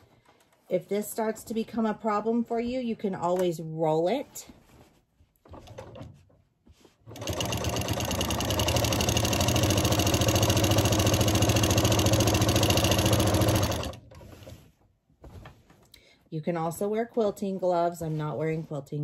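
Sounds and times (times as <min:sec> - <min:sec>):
sewing machine stitching: 0:07.0 - 0:14.6.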